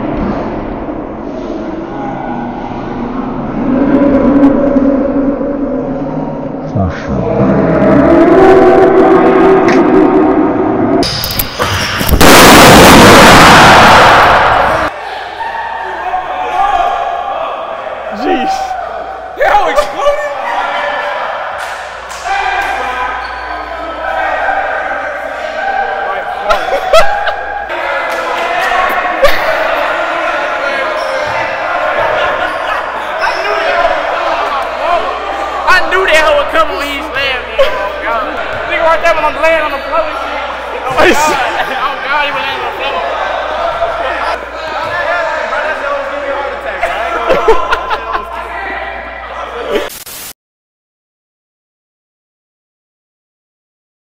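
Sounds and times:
people talking: 6.7 - 7.6, 22.2 - 49.9
loud distorted blast: 7.1 - 14.9
men chattering and laughing: 25.3 - 49.9.

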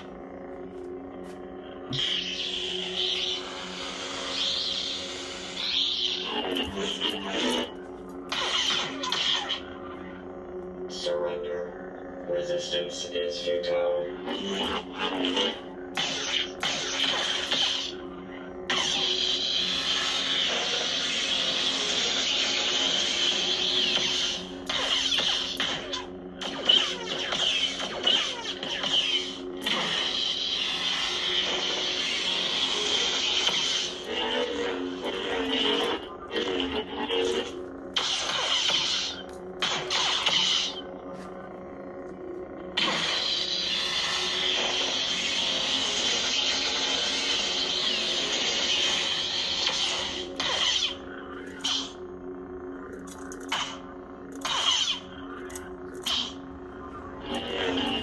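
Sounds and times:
lightsaber electronic hum: 0.0 - 58.0.

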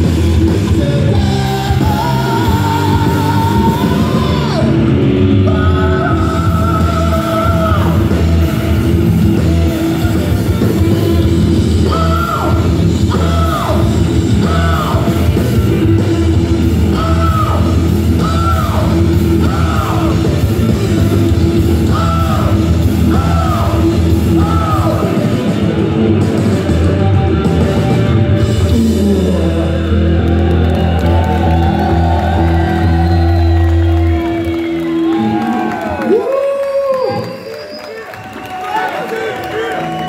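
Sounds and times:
heavy metal band playing: 0.0 - 36.2
crowd cheering: 0.8 - 27.8, 28.8 - 40.0.

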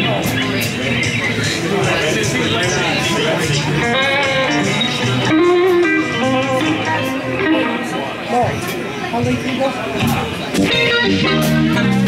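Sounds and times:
bass guitar: 0.0 - 8.5, 10.0 - 12.0
electric guitar lead lines: 0.0 - 8.8, 9.4 - 12.0
drums: 0.0 - 12.0.

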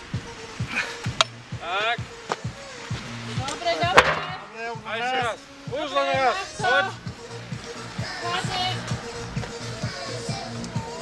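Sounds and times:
background music with steady beat: 0.0 - 11.0
voices shouting: 3.4 - 11.0.

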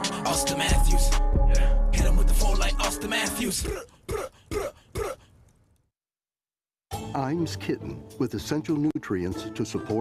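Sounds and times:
person clearing throat: 3.6 - 5.3.

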